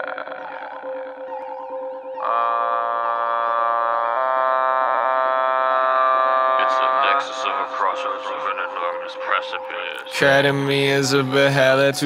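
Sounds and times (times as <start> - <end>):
person speaking: 5.7 - 12.0.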